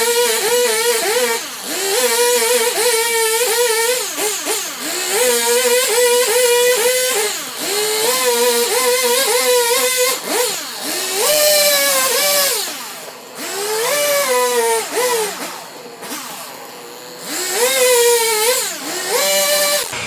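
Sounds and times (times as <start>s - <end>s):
chainsaw cutting log: 0.0s - 20.0s.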